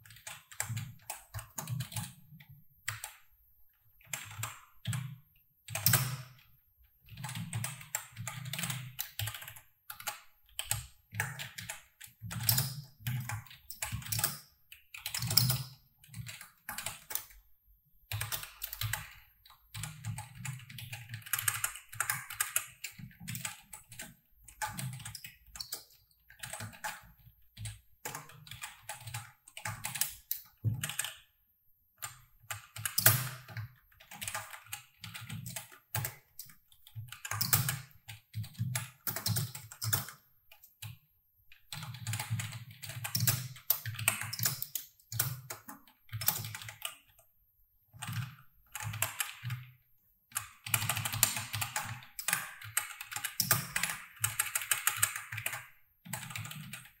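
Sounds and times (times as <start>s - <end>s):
keyboard typing clicks: 32.0s - 47.2s, 50.3s - 57.0s.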